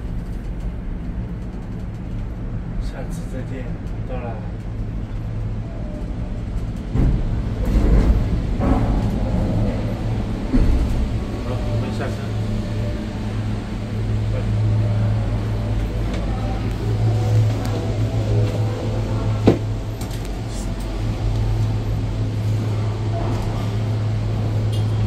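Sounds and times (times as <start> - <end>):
low machinery hum: 0.0 - 25.0
gondola cabin knocks and clanks: 6.4 - 25.0.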